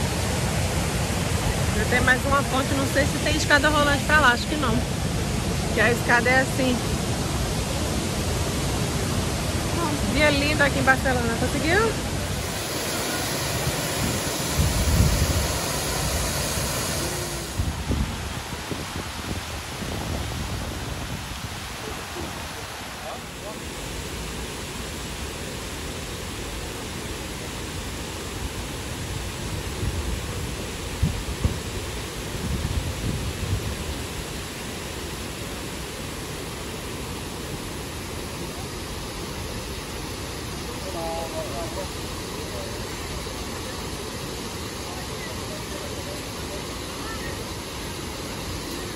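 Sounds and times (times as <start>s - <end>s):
fountain water rushing: 0.0s - 48.9s
wind buffeting microphone: 11.1s - 22.6s.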